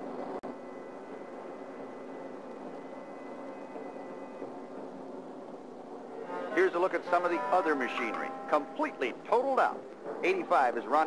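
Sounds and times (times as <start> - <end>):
film soundtrack hiss: 0.0 - 11.0
stock car engines humming: 0.0 - 11.0.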